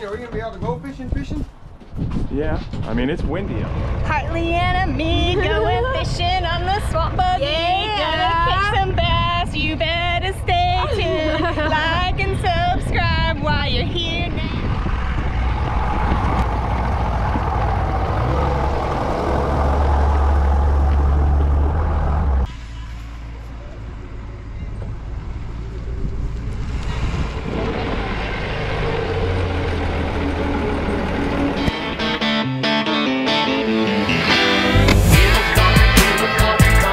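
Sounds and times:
engine running with low rumble: 2.9s - 32.3s.

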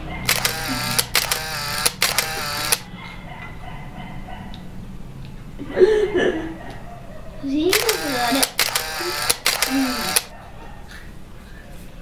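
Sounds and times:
short pitched bursts: 0.3s - 2.8s, 7.7s - 10.3s.

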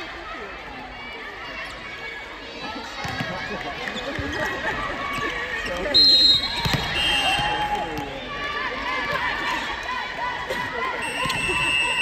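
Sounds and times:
players shouting calls: 5.2s - 12.0s.

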